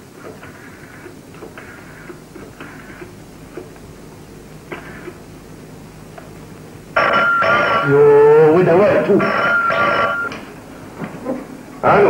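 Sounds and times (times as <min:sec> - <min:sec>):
telephone ringing: 0:06.9 - 0:10.4.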